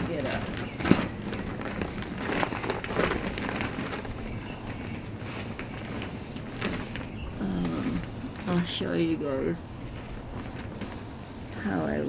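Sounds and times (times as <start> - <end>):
hammock fabric rustling: 0.0 - 12.0.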